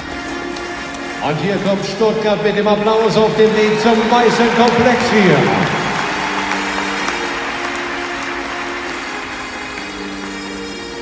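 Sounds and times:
background music with held notes: 0.0 - 11.0
crowd applauding: 0.3 - 11.0.

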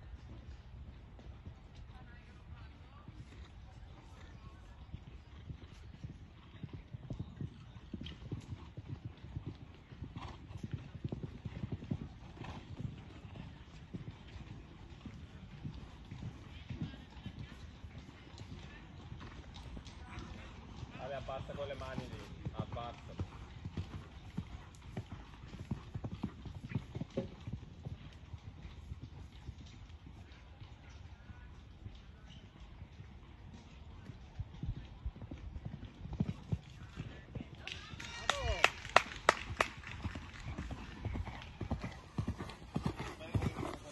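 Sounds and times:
horse cantering on sand: 0.0 - 43.9.

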